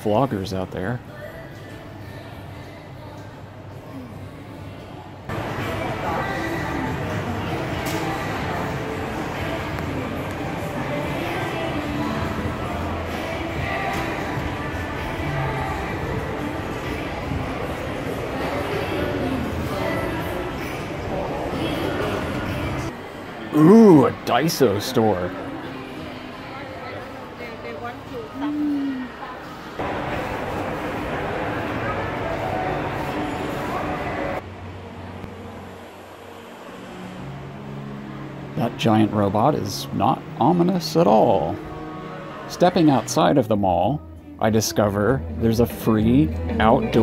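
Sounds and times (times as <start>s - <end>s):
faint music: 0.0s - 47.0s.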